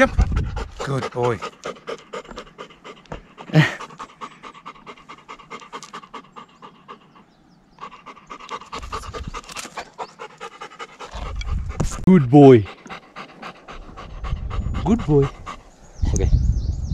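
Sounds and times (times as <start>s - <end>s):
dog panting hard: 0.0s - 15.8s.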